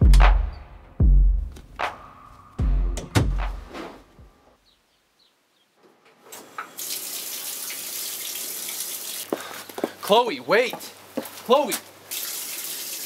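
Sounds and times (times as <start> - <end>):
deep booming hits: 0.0 - 1.5, 2.6 - 3.7
tap water running into sink: 6.8 - 9.3, 12.1 - 13.0.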